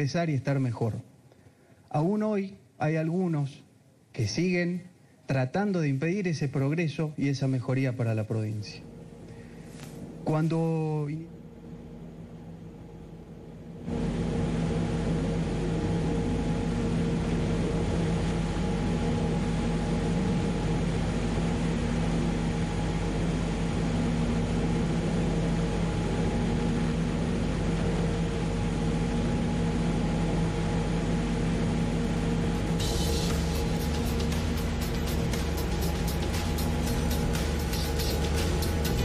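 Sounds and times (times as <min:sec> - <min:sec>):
loud steady whirring with low hum: 0:00.0 - 0:39.0.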